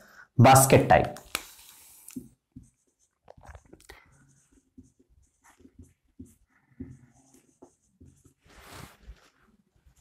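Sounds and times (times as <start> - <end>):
marker squeaking on whiteboard: 2.5 - 8.4.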